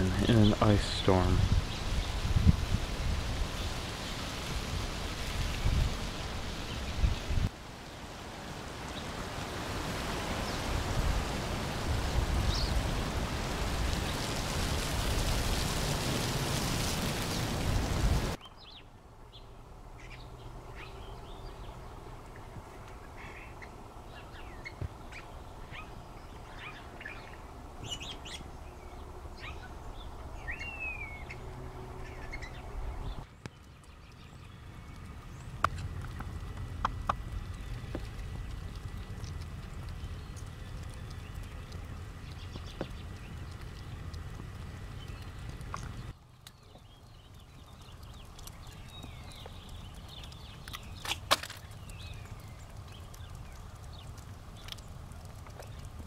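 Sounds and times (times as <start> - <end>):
wind rumbling: 0.0 - 56.0
bird chirps: 23.1 - 35.5.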